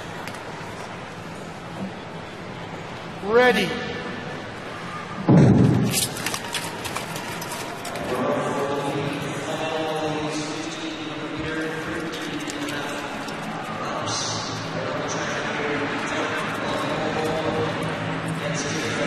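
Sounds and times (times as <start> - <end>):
crowd cheering: 6.0 - 19.0.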